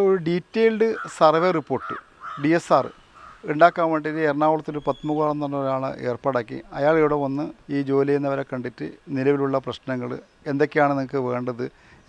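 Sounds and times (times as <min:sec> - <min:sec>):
man speaking: 0:00.0 - 0:11.7
crow cawing: 0:00.9 - 0:03.7.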